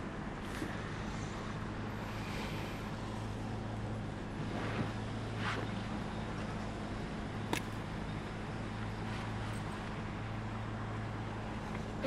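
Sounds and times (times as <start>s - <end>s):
road noise: 0.0s - 12.0s
van engine hum: 0.0s - 12.0s.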